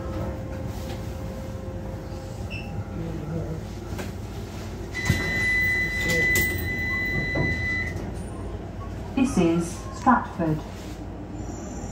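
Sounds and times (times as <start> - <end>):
train interior rumble: 0.0 - 11.9.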